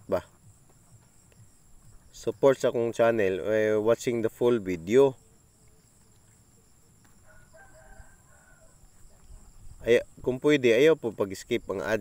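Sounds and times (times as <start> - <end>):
rooster crowing: 7.2 - 9.1.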